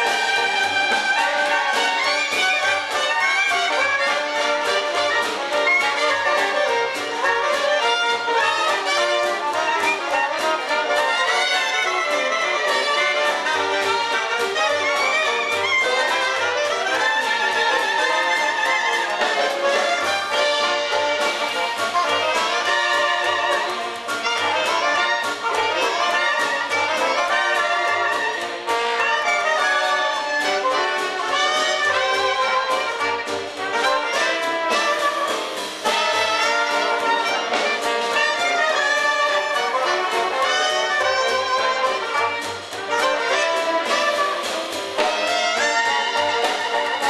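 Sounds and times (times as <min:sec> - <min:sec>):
double bass: 0:00.0 - 0:47.0
drums: 0:00.0 - 0:47.0
guitar: 0:00.0 - 0:47.0
piano: 0:00.0 - 0:47.0
saxophone: 0:00.0 - 0:47.0
trumpets: 0:00.0 - 0:47.0.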